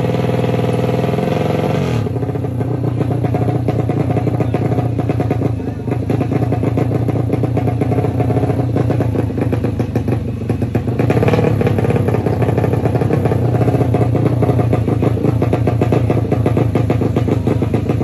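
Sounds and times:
motorcycle engine revving: 0:00.0 - 0:18.0.

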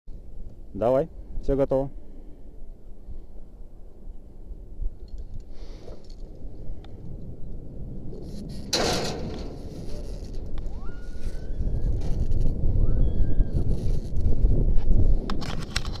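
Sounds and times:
wind buffeting microphone: 0:00.1 - 0:16.0.

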